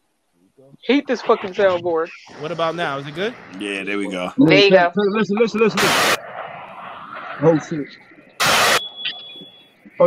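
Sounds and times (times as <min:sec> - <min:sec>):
loud tv static hiss: 0:00.6 - 0:04.9, 0:05.5 - 0:06.2, 0:07.4 - 0:08.8.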